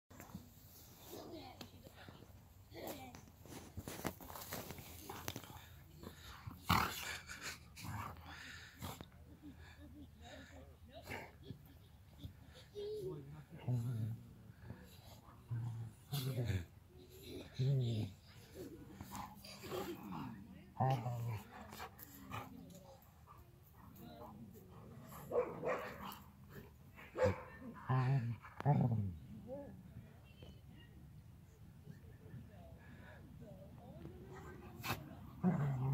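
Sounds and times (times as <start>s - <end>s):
dogs growling: 6.0s - 9.0s, 34.3s - 35.9s.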